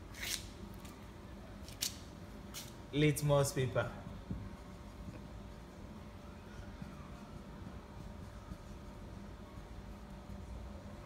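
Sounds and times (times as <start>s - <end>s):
scratchy writing on a board: 7.1s - 10.0s.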